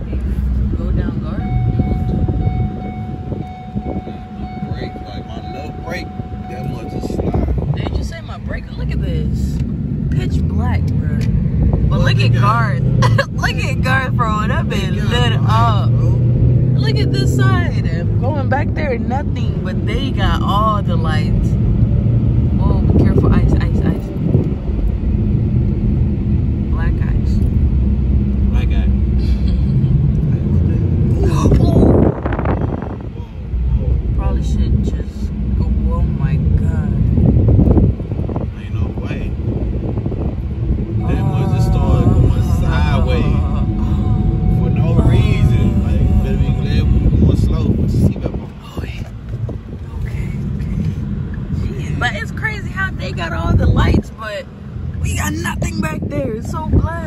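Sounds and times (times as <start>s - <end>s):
car road and engine rumble: 0.0s - 57.0s
thin steady whine: 40.6s - 48.2s
brief voices: 41.0s - 47.7s.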